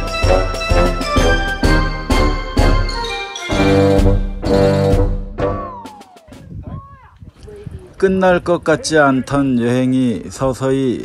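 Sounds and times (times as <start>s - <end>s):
descending whistle effect: 5.6s - 6.4s.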